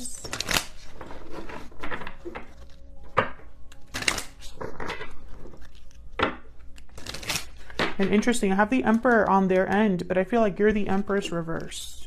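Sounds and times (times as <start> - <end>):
cards being shuffled: 0.0 - 12.0.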